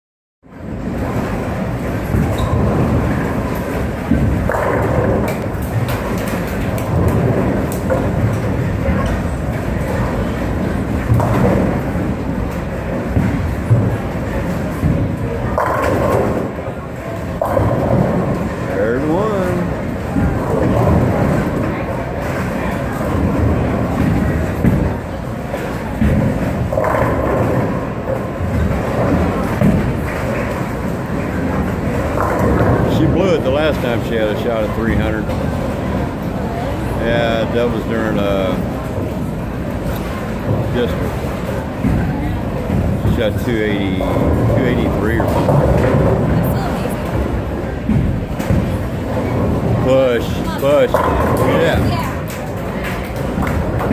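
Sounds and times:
bowling balls rolling: 0.5 - 53.9.

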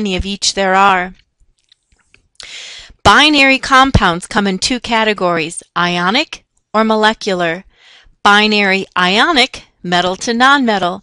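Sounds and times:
woman speaking: 0.0 - 1.2, 2.9 - 7.7, 8.3 - 11.0
woman breathing in: 2.4 - 3.0, 7.7 - 8.2.

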